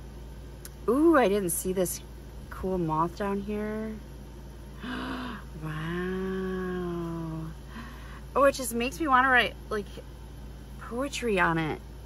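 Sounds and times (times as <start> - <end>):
woman gasping: 4.8 - 5.5, 7.6 - 8.3.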